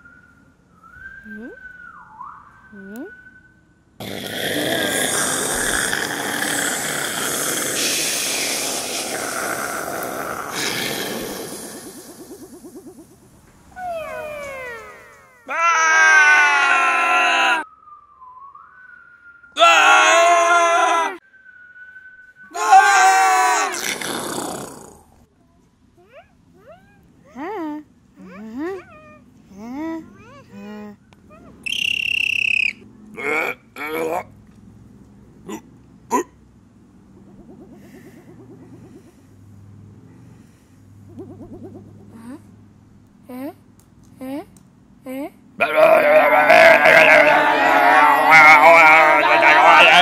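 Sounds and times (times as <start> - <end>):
children wailing: 13.8 - 17.6, 22.5 - 23.8, 45.6 - 50.0.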